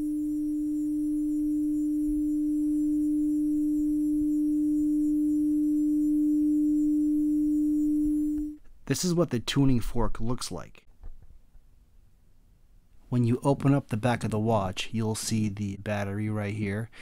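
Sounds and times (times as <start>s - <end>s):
watch humming pure tone: 0.0s - 8.6s.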